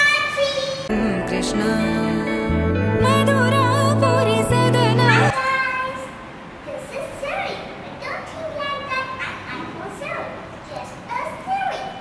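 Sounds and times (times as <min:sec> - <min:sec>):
young girl talking: 0:00.0 - 0:00.9, 0:05.3 - 0:12.0.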